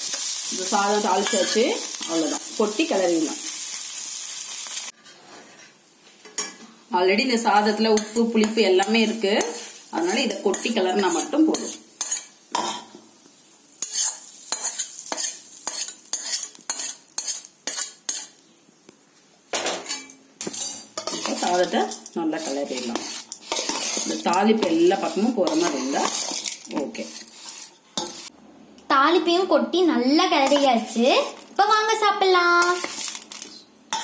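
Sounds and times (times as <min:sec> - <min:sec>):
metal spatula scraping steel vessel: 0:08.0 - 0:12.7, 0:13.8 - 0:18.4, 0:19.8 - 0:28.3, 0:30.4 - 0:30.9, 0:32.6 - 0:34.0.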